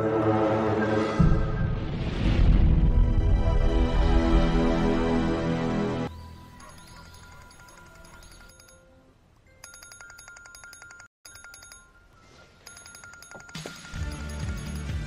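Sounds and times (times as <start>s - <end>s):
trilling electronic ringtone: 6.4s - 9.0s, 9.6s - 15.0s.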